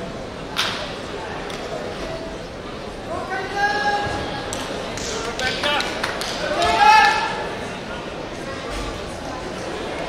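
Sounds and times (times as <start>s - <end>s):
voices echoing in a hall: 0.0s - 10.0s.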